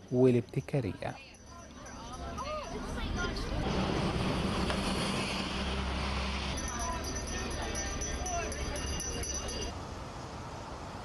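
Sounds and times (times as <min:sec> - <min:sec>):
traffic rumble: 0:00.0 - 0:11.0
crowd murmur: 0:01.4 - 0:04.6, 0:06.5 - 0:09.7.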